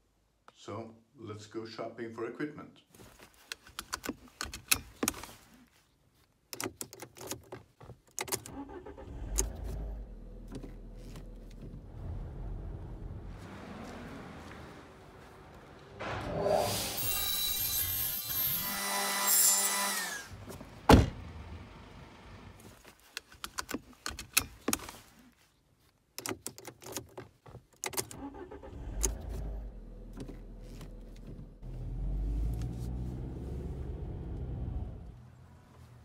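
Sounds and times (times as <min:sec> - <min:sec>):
seatbelt buckle and keys jangling: 0:03.0 - 0:05.4, 0:06.2 - 0:08.6, 0:10.4 - 0:11.8, 0:22.6 - 0:29.4, 0:30.1 - 0:31.6
car engine rumbling: 0:07.1 - 0:17.9, 0:20.3 - 0:25.1, 0:26.2 - 0:36.0.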